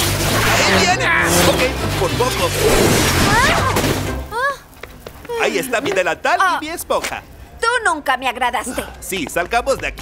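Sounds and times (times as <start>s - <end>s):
background music: 0.0s - 4.8s
loud noisy cartoon sound effect: 2.6s - 3.8s.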